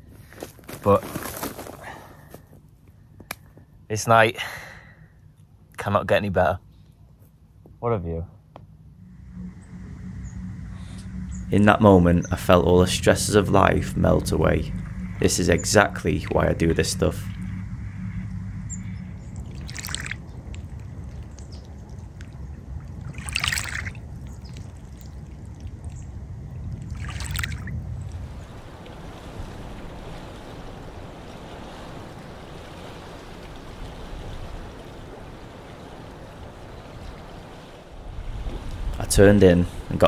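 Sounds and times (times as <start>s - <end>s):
low rumble: 6.5s - 40.0s
small waves lapping: 18.7s - 26.2s, 26.8s - 40.0s
water splashes: 18.8s - 40.0s.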